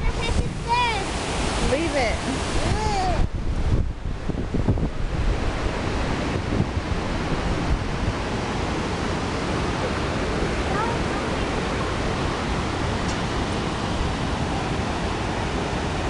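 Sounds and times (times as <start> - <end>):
river water rushing over weir: 0.0 - 16.0
wind buffeting microphone: 0.0 - 16.0.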